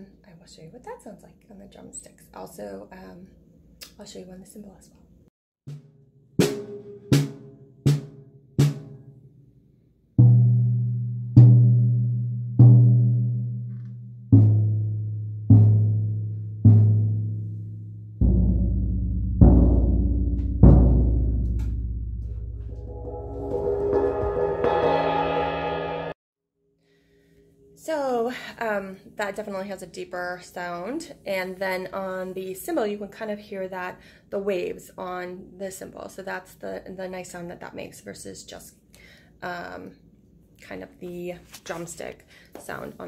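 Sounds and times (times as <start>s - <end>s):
mallets striking drums: 18.2s - 26.1s
mallet roll on cymbal: 22.3s - 26.2s.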